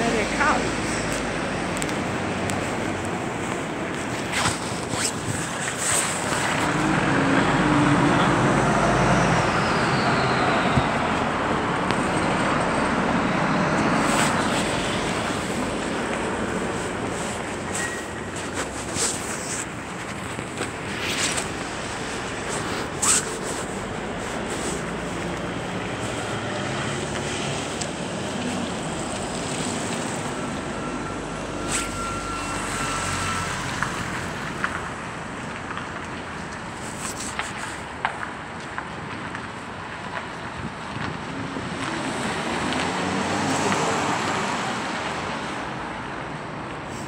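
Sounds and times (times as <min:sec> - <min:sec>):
city street traffic: 0:00.0 - 0:47.0
vehicle passing: 0:06.0 - 0:30.8.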